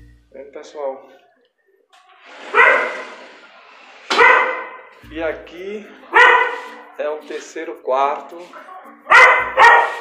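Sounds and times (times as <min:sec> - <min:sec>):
dog barking: 0:02.5 - 0:03.2, 0:04.1 - 0:04.9, 0:06.1 - 0:06.8, 0:08.6 - 0:10.0.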